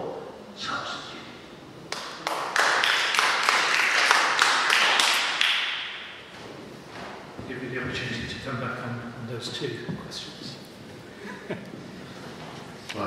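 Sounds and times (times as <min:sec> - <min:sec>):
audience applauding: 0:01.9 - 0:05.8.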